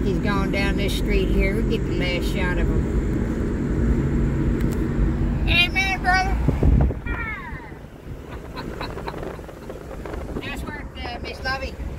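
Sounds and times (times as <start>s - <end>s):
car engine and tyre rumble: 0.0s - 11.9s.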